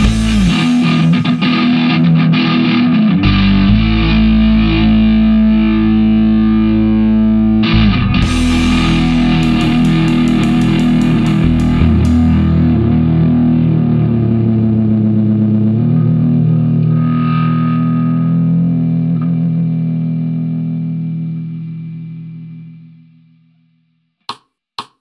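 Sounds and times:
drum strikes: 0.0s - 1.4s, 8.2s - 12.6s
distorted electric guitar and bass: 0.0s - 23.4s.

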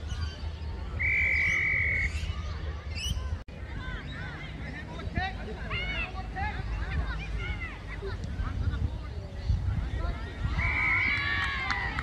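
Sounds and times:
whistle blast: 1.0s - 2.1s.

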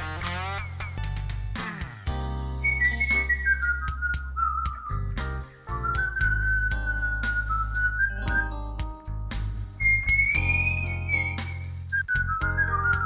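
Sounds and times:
backing music track: 0.0s - 13.0s
person whistling a melody: 2.6s - 8.9s, 9.8s - 13.0s.

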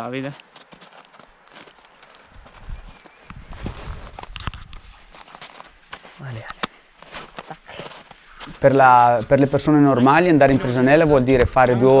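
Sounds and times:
traction spikes clicking and rustling: 0.2s - 8.6s
snow crunching: 0.2s - 11.2s.

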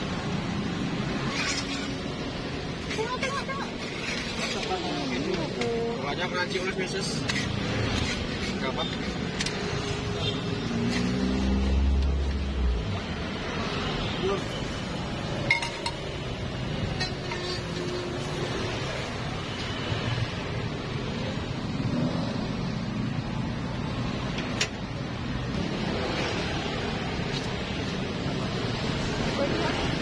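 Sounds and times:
metal utensils clinking on griddle: 15.5s - 16.0s, 16.9s - 18.0s.

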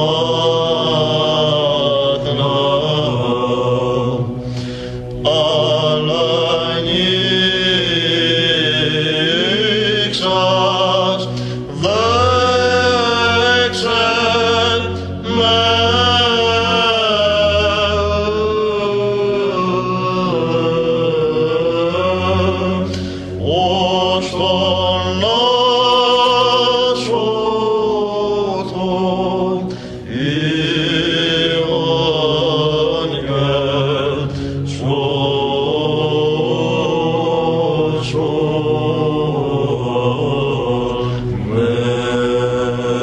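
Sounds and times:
low held drone: 0.0s - 43.0s
man chanting ornamented melody: 5.2s - 43.0s.

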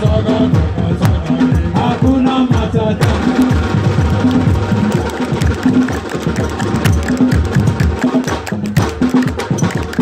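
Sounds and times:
hand drums and drum kit: 0.0s - 10.0s.

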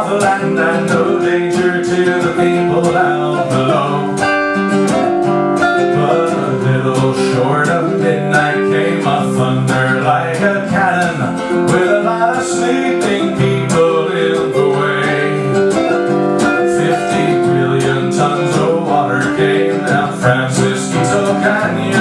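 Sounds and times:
strummed guitar: 0.0s - 22.0s.

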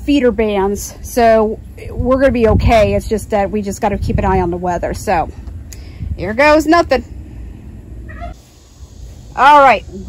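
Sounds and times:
low microphone rumble: 0.0s - 10.0s
meow-like animal call: 8.1s - 8.4s.

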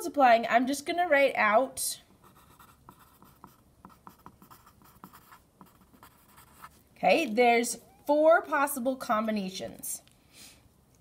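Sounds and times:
pencil scratching on paper: 2.2s - 6.8s.

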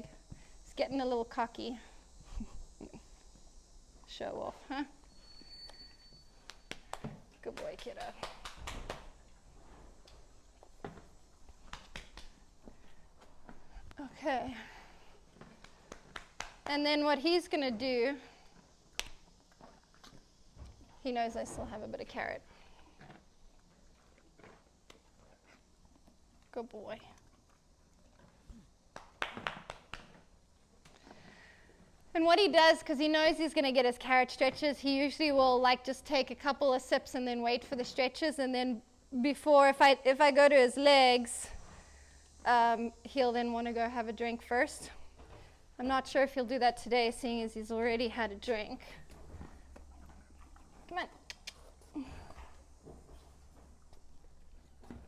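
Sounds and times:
faint high whine: 0.0s - 7.8s.

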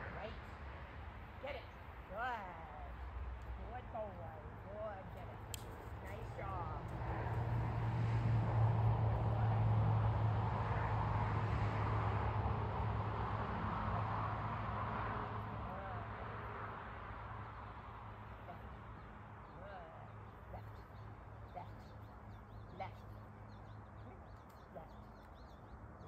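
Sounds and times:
engine passing by: 0.0s - 25.1s.

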